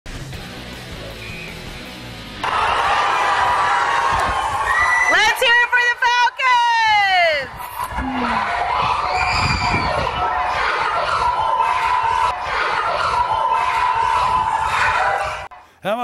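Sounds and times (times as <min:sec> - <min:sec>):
children cheering and shouting: 0:02.4 - 0:15.5.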